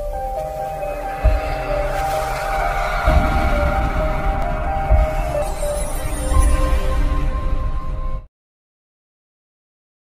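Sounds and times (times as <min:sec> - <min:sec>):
intro music with deep bass: 0:00.0 - 0:08.2
low boom: 0:01.2 - 0:07.9.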